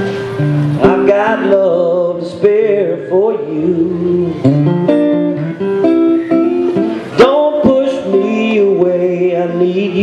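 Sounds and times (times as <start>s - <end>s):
acoustic guitar strumming: 0.0s - 10.0s
person singing folk song: 0.0s - 10.0s.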